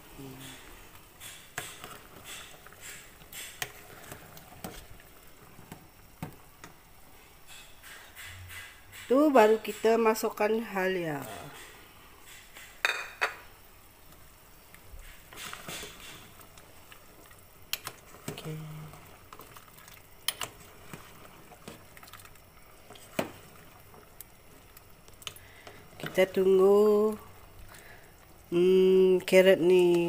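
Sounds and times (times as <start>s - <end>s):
soup bubbling: 0.0s - 10.8s, 11.4s - 30.0s.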